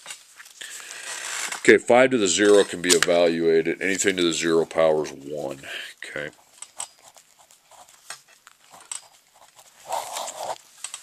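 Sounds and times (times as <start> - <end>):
pen scratching on paper: 6.2 - 10.6.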